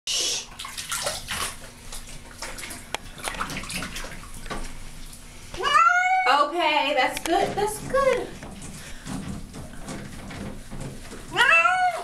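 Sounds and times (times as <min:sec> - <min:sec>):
water splashing in bathtub: 0:00.1 - 0:12.0
cat yowling: 0:05.6 - 0:06.4, 0:11.3 - 0:12.0.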